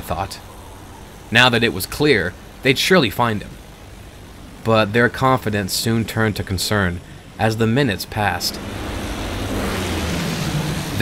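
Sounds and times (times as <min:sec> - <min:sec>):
propeller aircraft engine droning: 0:00.0 - 0:11.0
rushing wind: 0:00.0 - 0:11.0.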